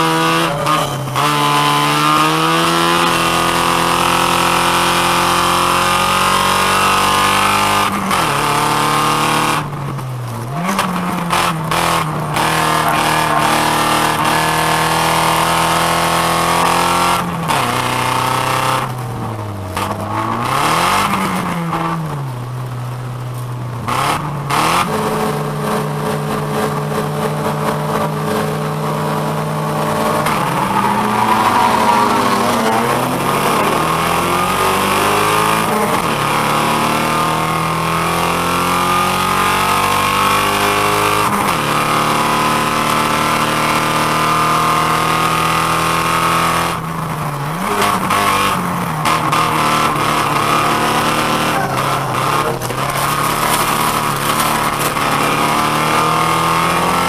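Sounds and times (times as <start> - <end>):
car engine accelerating: 0.0 - 57.0.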